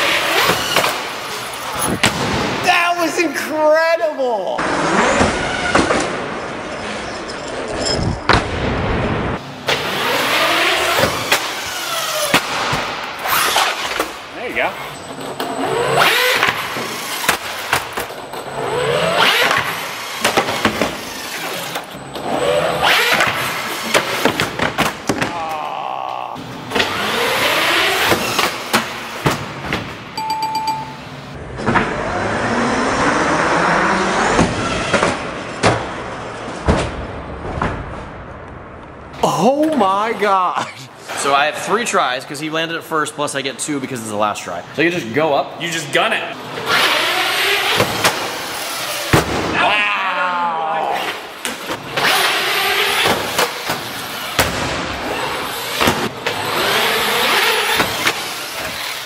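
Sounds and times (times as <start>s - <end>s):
toy truck motors whining: 46.6s - 49.1s, 55.0s - 59.0s.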